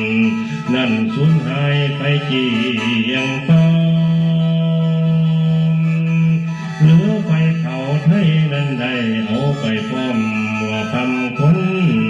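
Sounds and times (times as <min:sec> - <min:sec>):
bamboo mouth organ: 0:00.0 - 0:12.0
man singing: 0:00.0 - 0:12.0.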